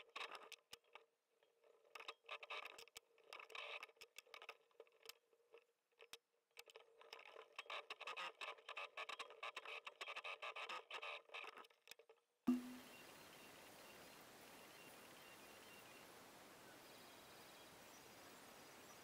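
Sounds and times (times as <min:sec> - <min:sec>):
faint steady hum: 0:12.5 - 0:19.0.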